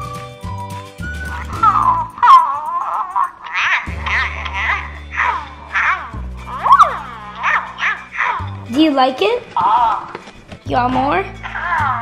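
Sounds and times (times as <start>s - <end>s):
background music with low bass: 0.0s - 2.6s, 3.2s - 12.0s
toy dragon chirping and squeaking: 5.3s - 8.4s.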